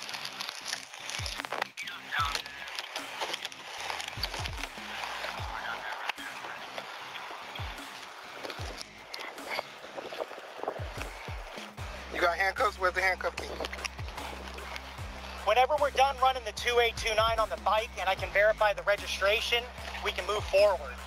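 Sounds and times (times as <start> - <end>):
irregular thumps: 0.0 - 5.7, 7.6 - 12.2, 13.2 - 15.5
clothing rubbing on microphone: 0.0 - 12.2
faint voices: 1.4 - 21.0.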